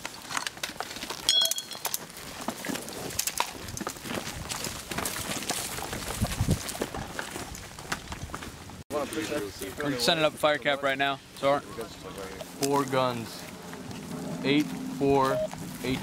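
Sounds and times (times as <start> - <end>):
metallic clink: 1.3 - 2.0
footsteps on dry leaves: 2.0 - 8.8, 12.4 - 16.0.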